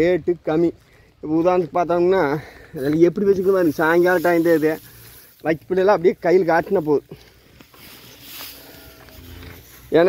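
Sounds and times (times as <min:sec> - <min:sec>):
cow rustling dry straw: 0:02.8 - 0:10.0.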